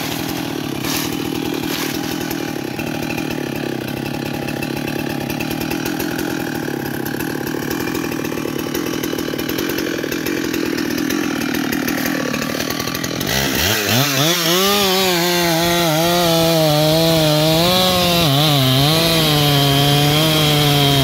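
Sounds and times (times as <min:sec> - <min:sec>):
chainsaw idling: 0:00.0 - 0:21.0.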